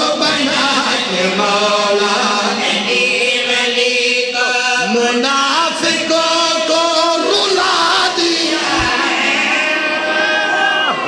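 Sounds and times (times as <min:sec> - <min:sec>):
man chanting melodically: 0:00.0 - 0:09.6.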